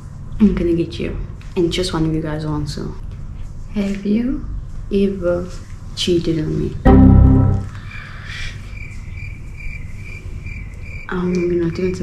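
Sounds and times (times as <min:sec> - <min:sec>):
low hum: 0:06.9 - 0:08.0
cricket chirps: 0:07.9 - 0:12.0.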